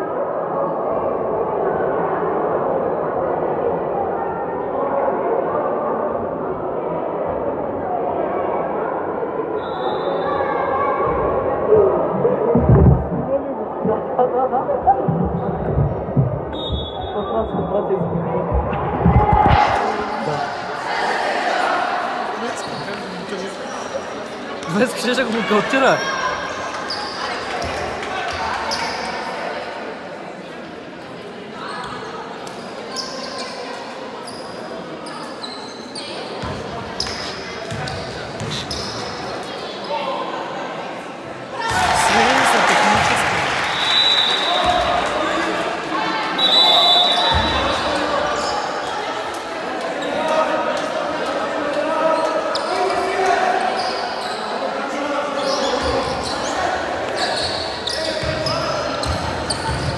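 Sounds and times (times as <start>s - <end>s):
spectators chattering: 0.0s - 59.9s
referee's whistle: 9.6s - 10.4s, 16.5s - 17.4s, 43.6s - 44.9s, 46.4s - 47.8s
ball bouncing on wooden court: 58.2s - 59.9s.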